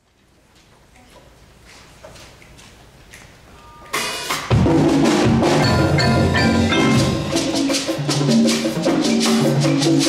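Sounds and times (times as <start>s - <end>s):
percussion ensemble stroke: 3.9s - 10.0s.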